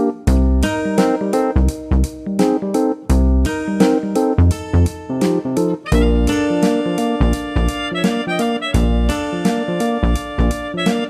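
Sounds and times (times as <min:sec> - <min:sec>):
plucked guitar notes: 0:00.0 - 0:11.0
repeated bass notes: 0:00.0 - 0:11.0.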